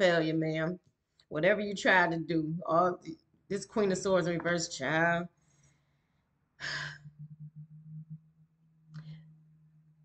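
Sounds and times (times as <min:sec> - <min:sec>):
faint low hum: 0:06.6 - 0:10.0.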